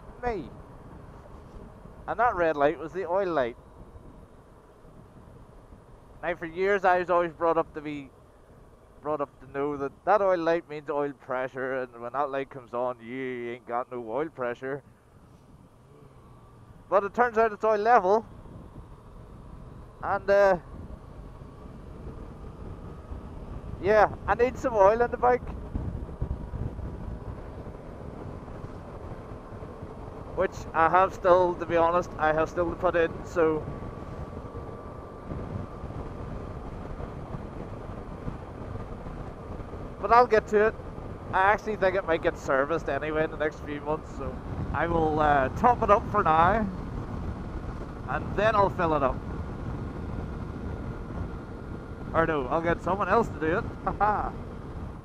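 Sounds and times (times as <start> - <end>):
wind buffeting microphone: 0.0 - 11.2, 14.8 - 55.0
motorcycle engine cruising: 0.0 - 12.7, 14.7 - 55.0.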